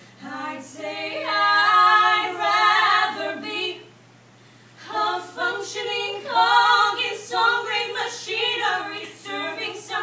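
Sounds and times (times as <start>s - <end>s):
group singing a cappella: 0.0s - 4.0s, 4.8s - 10.0s.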